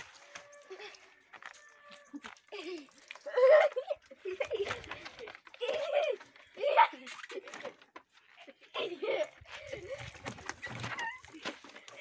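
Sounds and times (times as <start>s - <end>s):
boys laughing and shouting: 2.2s - 12.0s.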